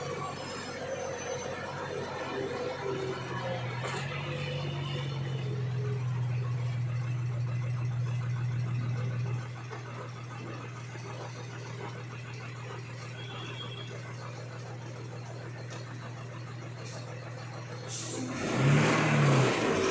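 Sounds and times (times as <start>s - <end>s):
lorry engine running: 0.0s - 19.9s.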